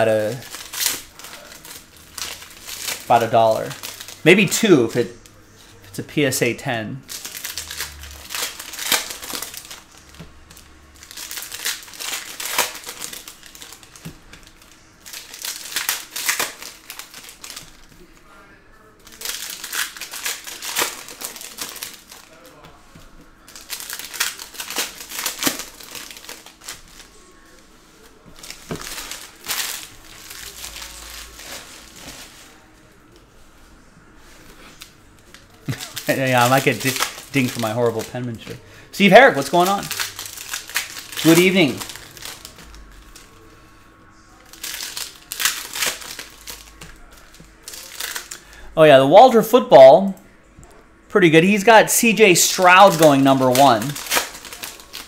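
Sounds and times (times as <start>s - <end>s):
cards rustling: 0.0s - 5.4s, 7.0s - 18.2s, 19.0s - 33.3s, 34.2s - 43.8s, 44.4s - 48.6s, 51.2s - 55.0s
foil wrappers crinkling: 0.0s - 33.5s, 34.2s - 50.1s, 51.4s - 55.0s.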